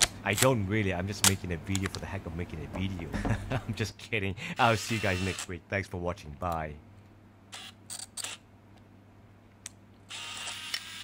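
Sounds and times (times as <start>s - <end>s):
camera mechanical whirr: 4.8s - 5.5s, 7.5s - 8.4s, 10.1s - 11.0s
camera shutter clicks: 10.2s - 11.0s.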